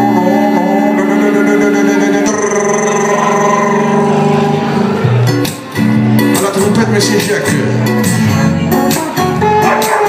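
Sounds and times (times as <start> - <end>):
person singing long notes: 0.0 - 5.2
acoustic guitar: 0.0 - 10.0.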